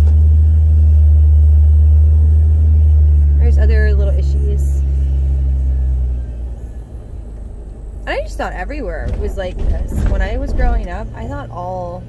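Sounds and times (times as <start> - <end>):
car engine rumble: 0.0 - 12.0
road noise inside car: 0.0 - 12.0.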